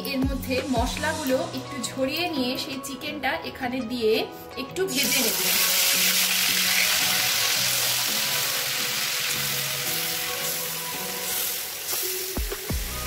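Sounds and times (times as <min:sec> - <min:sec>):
chicken sizzling in hot oil: 0:04.9 - 0:13.0.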